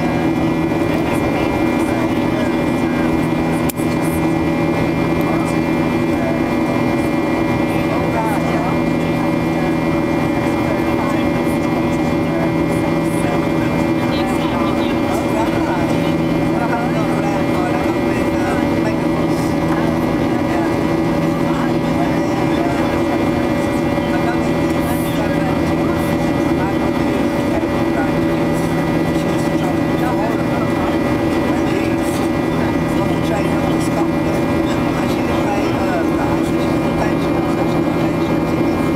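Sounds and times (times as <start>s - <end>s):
jet engine drone in cabin: 0.0s - 38.9s.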